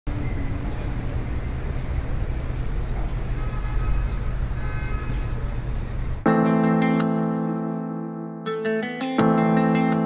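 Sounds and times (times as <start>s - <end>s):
low rumble of vehicles: 0.1s - 6.3s.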